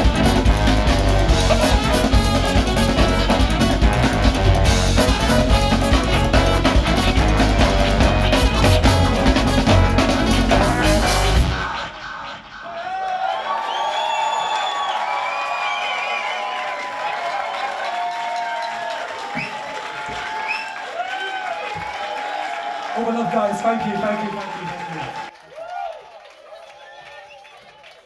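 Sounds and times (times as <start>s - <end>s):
live band with drum kit: 0.0s - 12.4s
audience cheering and whooping: 10.9s - 28.0s
applause: 12.9s - 28.0s.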